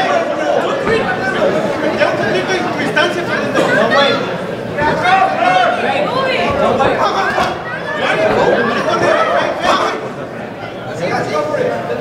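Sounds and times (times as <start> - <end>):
spectators talking and shouting: 0.0 - 12.0.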